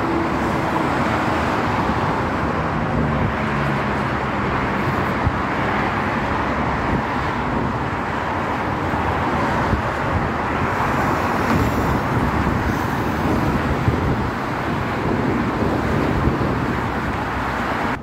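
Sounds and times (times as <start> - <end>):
freeway traffic rush: 0.0 - 18.0.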